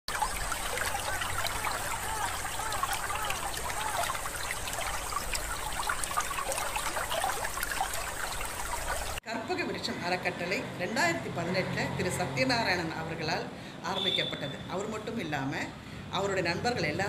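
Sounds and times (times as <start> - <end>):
water trickling and bubbling: 0.1 - 9.2.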